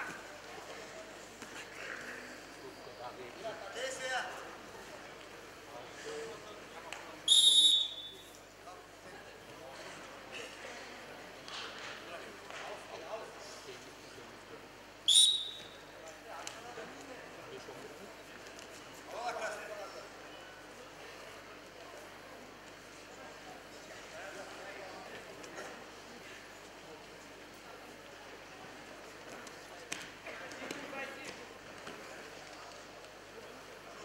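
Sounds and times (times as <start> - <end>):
noisy arena crowd: 0.0 - 34.0
referee's whistle blast: 7.3 - 8.3, 15.1 - 15.8.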